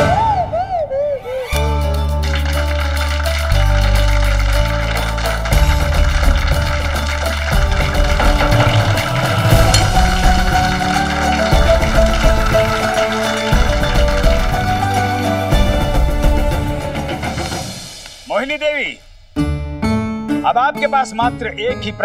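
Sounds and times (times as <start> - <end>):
dramatic orchestral score: 5.6 - 18.7.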